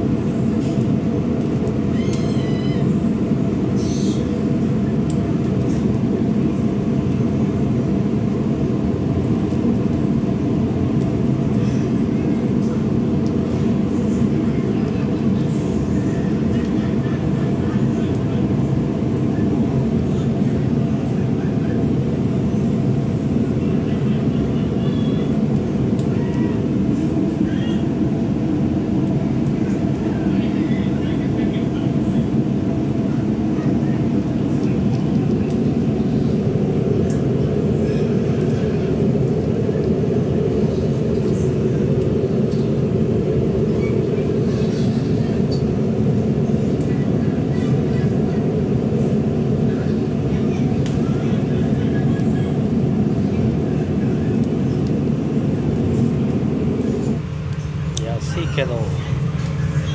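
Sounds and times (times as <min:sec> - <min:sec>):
gas burner flame roaring: 0:00.0 - 0:59.9.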